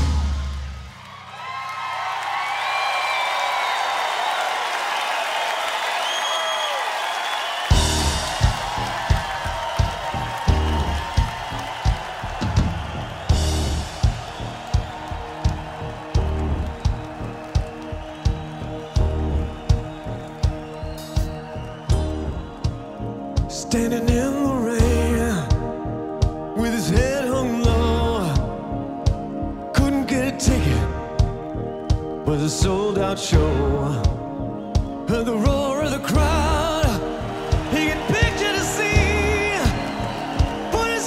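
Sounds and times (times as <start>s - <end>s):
drum solo: 0.0s - 0.9s, 7.6s - 28.5s, 34.8s - 41.0s
crowd cheering and whistling: 0.0s - 41.0s
drum kit steady beat: 7.6s - 29.9s, 30.5s - 41.0s.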